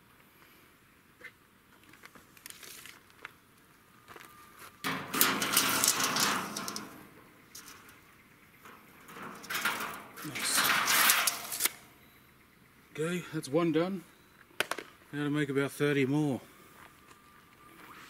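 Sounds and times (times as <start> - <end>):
tape measure rattling on metal sheet: 4.9 - 7.9, 8.7 - 11.9.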